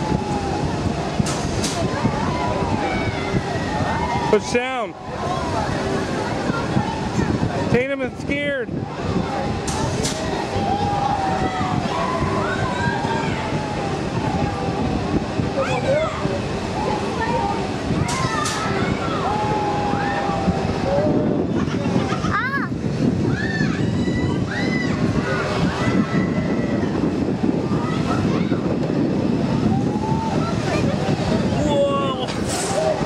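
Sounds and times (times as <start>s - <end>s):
steady low rumble: 0.0s - 33.0s
wind rushing over microphone: 0.0s - 33.0s.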